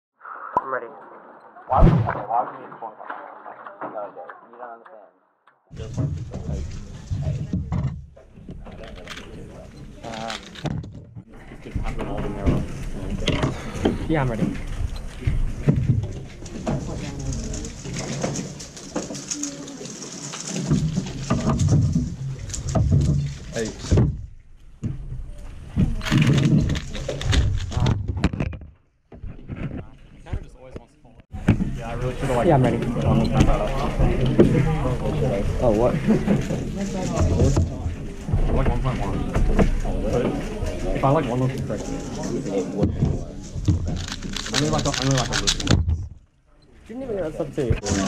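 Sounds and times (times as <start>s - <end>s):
indistinct background voices: 0.4s - 7.7s, 8.4s - 24.0s, 29.3s - 45.9s, 46.7s - 48.0s.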